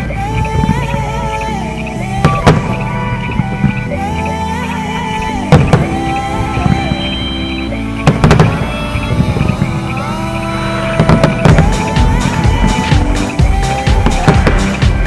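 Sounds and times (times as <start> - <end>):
fireworks crackling: 0.0 - 15.0
instrumental melody: 0.0 - 15.0
fireworks bursting with bangs: 2.2 - 4.0, 5.4 - 10.2, 10.8 - 15.0.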